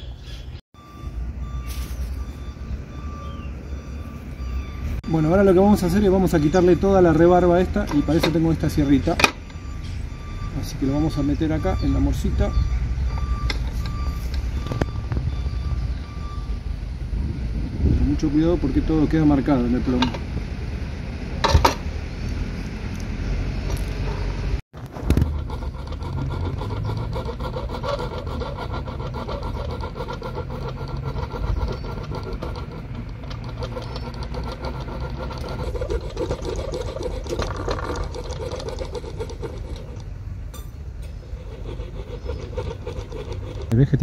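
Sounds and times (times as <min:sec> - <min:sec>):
fine saw cutting metal: 0:25.1 - 0:40.0, 0:40.6 - 0:43.7.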